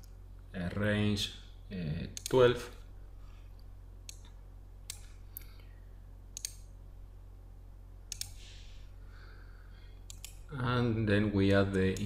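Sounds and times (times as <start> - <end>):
low steady hum: 0.0 - 12.0
computer mouse clicks: 2.2 - 2.4, 3.6 - 5.6, 6.4 - 6.7, 8.1 - 8.4, 10.0 - 10.5.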